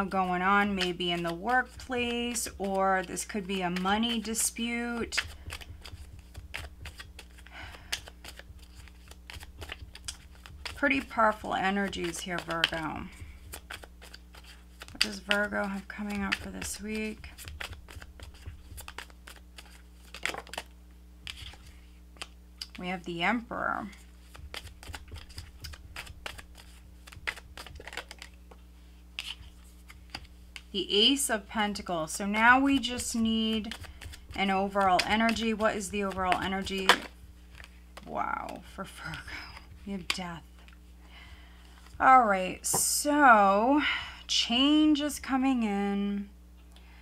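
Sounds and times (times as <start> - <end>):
cards being shuffled: 0.0 - 22.8, 23.8 - 30.8, 31.7 - 40.9.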